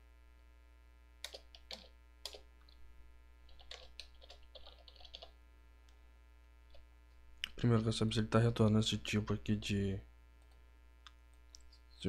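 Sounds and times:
faint computer keyboard typing: 0:01.2 - 0:02.8, 0:03.4 - 0:05.4, 0:10.4 - 0:10.6.

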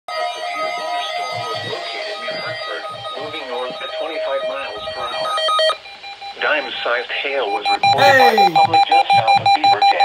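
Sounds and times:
voice through radio speaker: 0:07.9 - 0:08.7.

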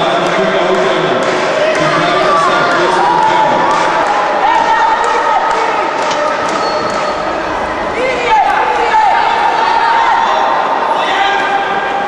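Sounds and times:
voices shouting in echoing hall: 0:00.0 - 0:12.0.

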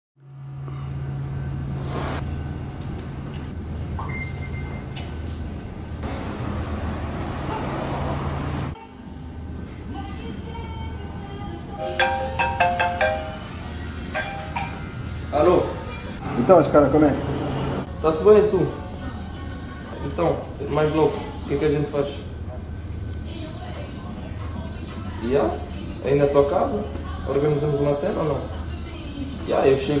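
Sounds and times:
steady low hum: 0:00.2 - 0:06.8
smartphone ringtone: 0:11.8 - 0:14.8.

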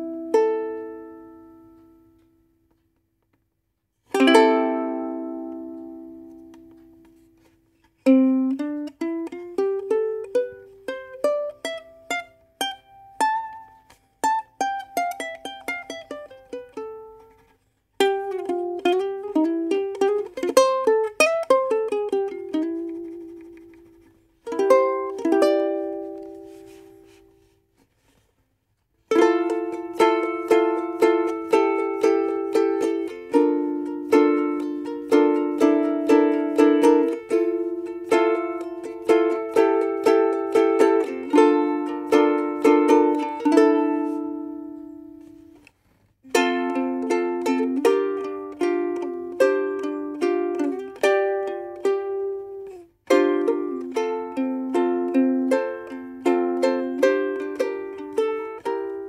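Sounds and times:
ukulele strummed chords: 0:00.0 - 0:02.9, 0:04.0 - 0:28.2, 0:29.0 - 0:59.0
ukulele single-note runs: 0:04.1 - 0:07.2, 0:18.0 - 0:27.2.

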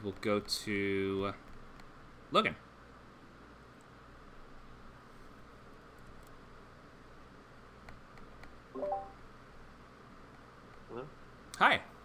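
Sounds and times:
faint steady hiss: 0:00.0 - 0:12.0
brief pitched sound: 0:08.8 - 0:09.2.

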